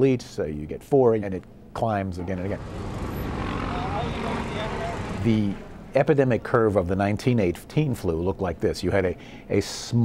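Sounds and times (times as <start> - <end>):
vehicle traffic: 2.2 - 7.3.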